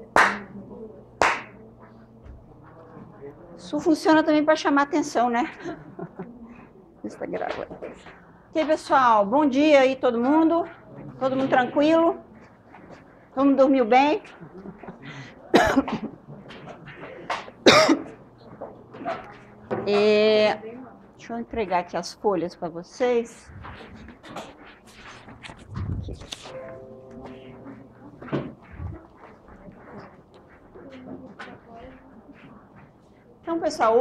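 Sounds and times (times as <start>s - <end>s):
sharp hand claps: 0.0s - 0.6s, 1.2s - 1.6s
woman coughing: 15.5s - 16.1s, 17.6s - 18.2s.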